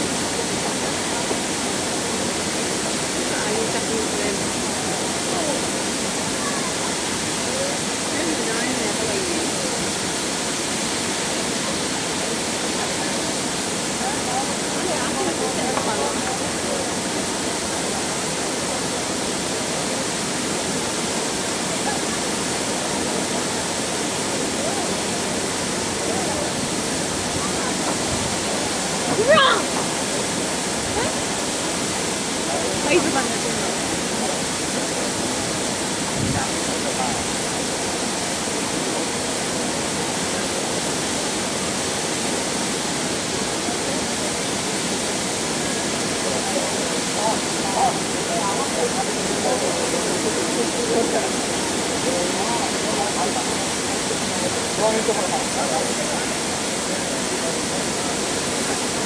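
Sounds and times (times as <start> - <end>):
crowd murmuring: 0.0 - 59.0
fountain water spraying: 0.0 - 59.0.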